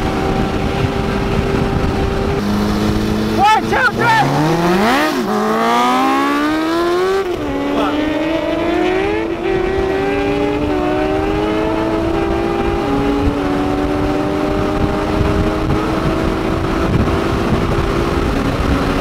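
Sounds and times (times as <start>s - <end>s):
motorcycle passing close: 0.0s - 19.0s
vehicle engines accelerating: 0.0s - 19.0s.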